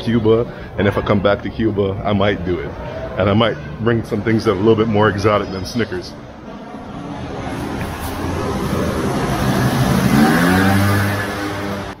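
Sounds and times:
vehicle engine accelerating past: 6.7 - 12.0.

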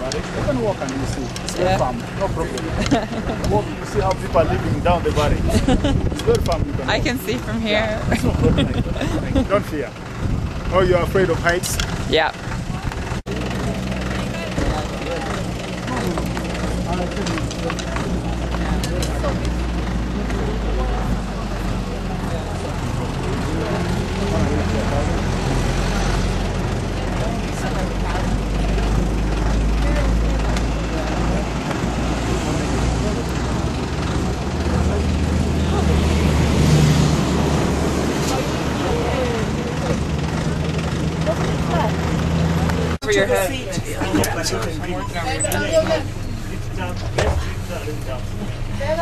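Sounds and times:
vehicle engine idling: 0.0 - 49.0.

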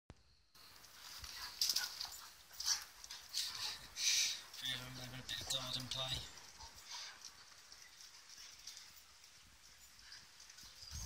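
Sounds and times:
dogs play-fighting and vocalising: 0.6 - 5.1, 5.7 - 11.0.

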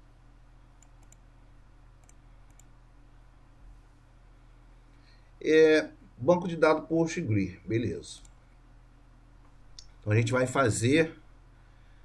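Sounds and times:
low steady hum: 0.0 - 12.0
computer mouse clicks: 0.8 - 1.3, 2.0 - 2.8.

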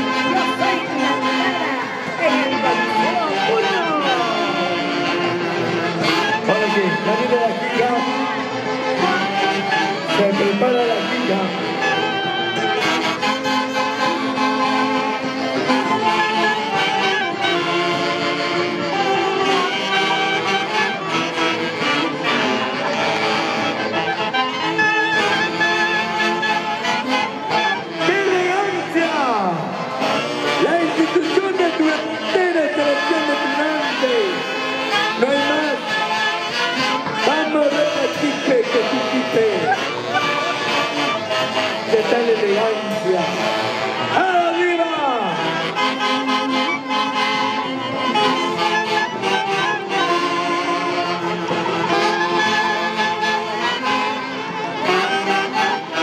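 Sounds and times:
saxophones playing tune: 0.0 - 56.0
violins: 0.0 - 56.0.

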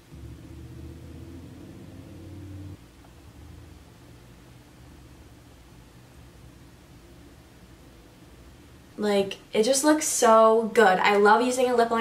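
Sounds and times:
low steady hum: 0.0 - 11.8
faint background noise: 0.0 - 12.0.

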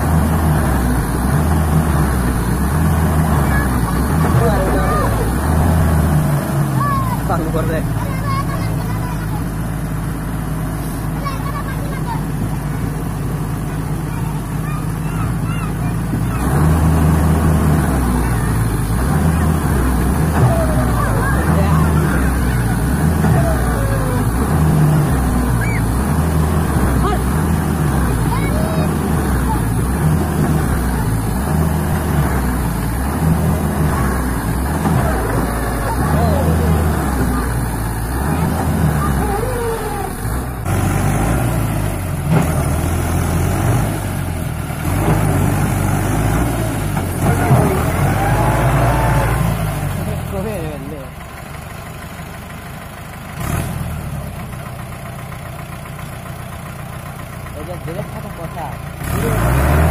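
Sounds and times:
tractor diesel engine labouring: 0.0 - 59.9.

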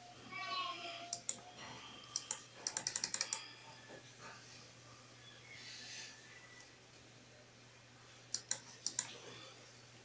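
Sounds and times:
computer mouse clicks: 1.1 - 1.4, 2.1 - 3.4, 8.3 - 9.2.

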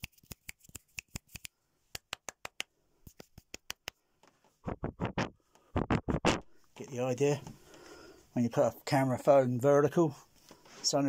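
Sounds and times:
sharp small clicks: 0.0 - 4.0.

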